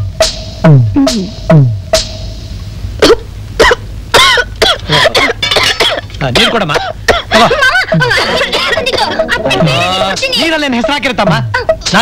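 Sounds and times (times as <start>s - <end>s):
person coughing: 3.0s - 7.6s
voices: 4.8s - 12.0s.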